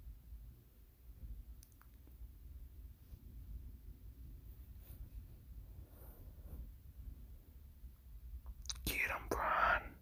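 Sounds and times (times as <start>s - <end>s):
faint clicks: 1.6s - 2.2s
person's breathy whispered sounds: 8.6s - 10.0s.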